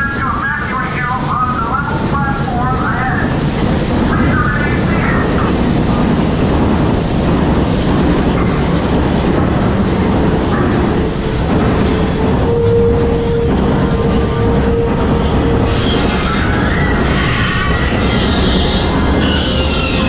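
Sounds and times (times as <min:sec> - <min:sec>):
mid-pitched hum: 0:00.0 - 0:17.4
ride machinery rumble and rattle: 0:00.0 - 0:20.0.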